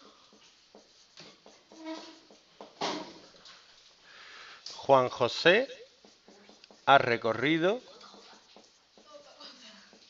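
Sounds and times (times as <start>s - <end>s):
marker writing on whiteboard: 0.0s - 4.0s, 4.7s - 10.0s
marker squeaks: 0.3s - 2.8s, 5.3s - 10.0s.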